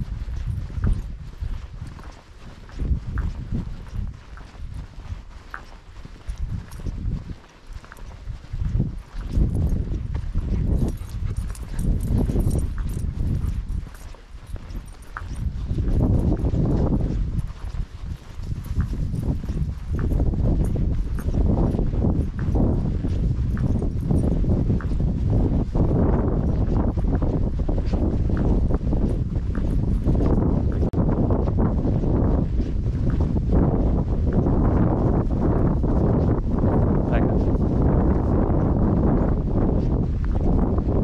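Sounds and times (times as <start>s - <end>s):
footsteps on dirt track: 0.0s - 41.0s
wind rumbling on microphone: 0.0s - 41.0s.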